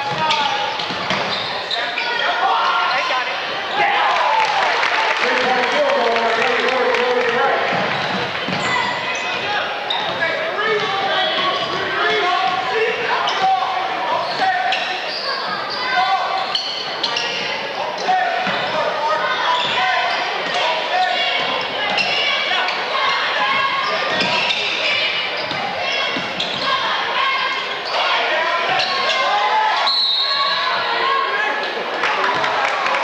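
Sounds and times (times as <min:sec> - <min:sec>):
echoing voices: 0:00.0 - 0:33.0.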